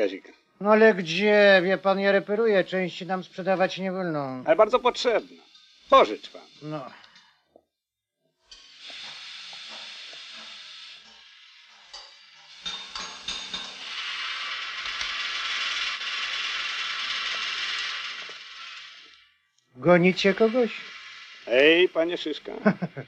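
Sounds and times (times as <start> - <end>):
steady hiss: 0.0 - 7.4, 8.5 - 23.0.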